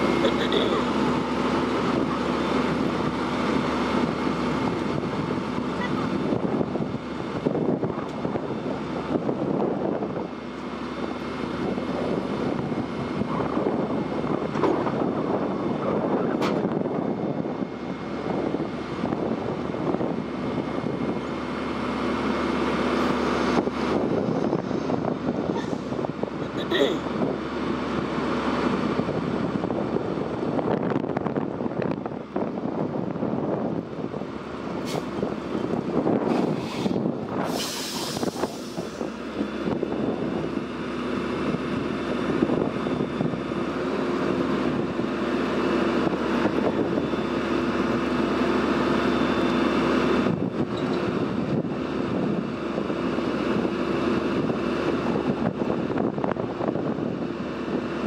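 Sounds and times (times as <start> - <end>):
diesel engine running: 0.0 - 58.0
hiss burst: 36.6 - 39.0.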